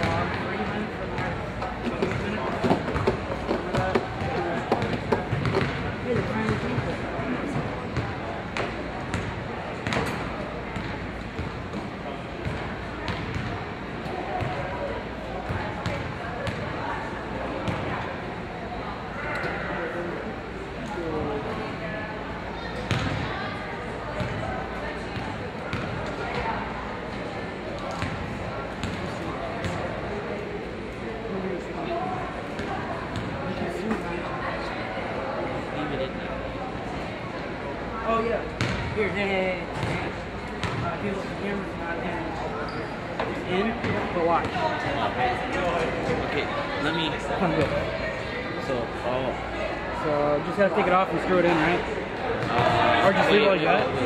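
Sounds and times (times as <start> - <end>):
indistinct crowd chatter: 0.0 - 54.0
basketballs bouncing on hardwood floor: 1.9 - 6.8, 22.9 - 23.2, 38.6 - 38.9, 40.6 - 40.9.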